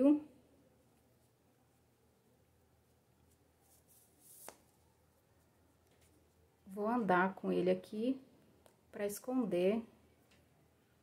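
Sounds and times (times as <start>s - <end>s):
yarn rustling with crochet hook: 0.0s - 8.1s.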